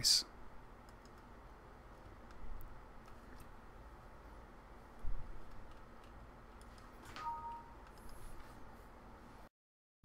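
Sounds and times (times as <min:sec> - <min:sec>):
low room hum: 0:00.0 - 0:09.5
computer mouse clicks: 0:00.8 - 0:01.3, 0:02.2 - 0:03.6, 0:05.4 - 0:08.3
two-note electronic chime: 0:07.2 - 0:07.8.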